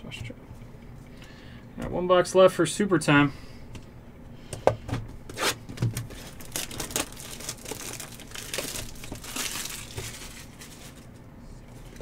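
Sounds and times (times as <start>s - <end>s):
plastic wrap crinkling and tearing: 5.3s - 11.2s.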